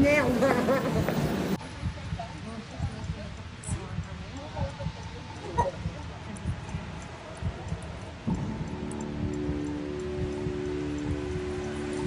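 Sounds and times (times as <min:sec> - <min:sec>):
low rumbling street thumps: 0:01.1 - 0:12.0.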